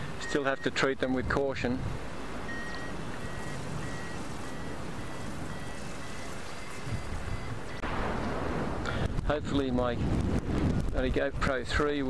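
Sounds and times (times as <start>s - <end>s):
variometer high beeps: 0.2s - 0.8s, 2.5s - 7.9s
wind rushing over glider: 1.2s - 12.0s.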